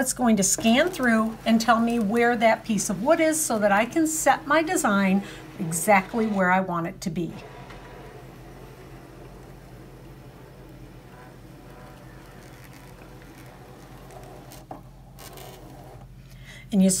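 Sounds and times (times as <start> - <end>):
cutting machine motor and rollers: 0.0 - 16.1
machine clunk: 0.3 - 14.5.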